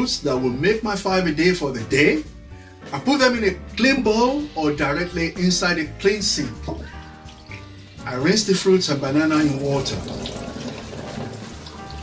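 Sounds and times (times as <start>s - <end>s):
tap water running into a sink: 6.5s - 12.0s.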